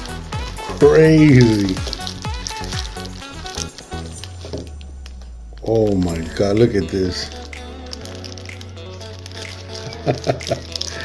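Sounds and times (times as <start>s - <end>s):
background music: 0.0s - 11.0s
man's short laugh: 9.9s - 10.7s.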